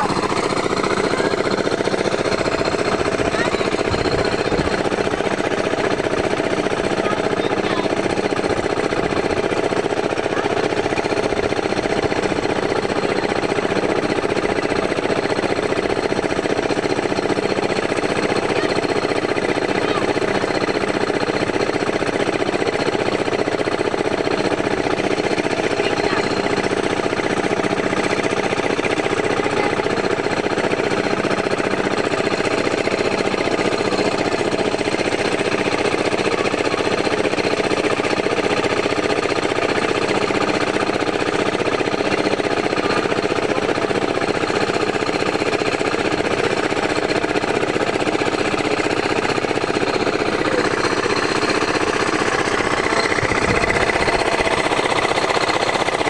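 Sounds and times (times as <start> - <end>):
small engine running steadily: 0.0 - 56.0.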